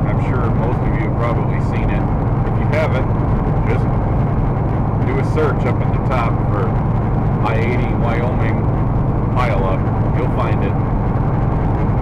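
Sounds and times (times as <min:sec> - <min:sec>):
truck engine drone and road noise: 0:00.0 - 0:12.0.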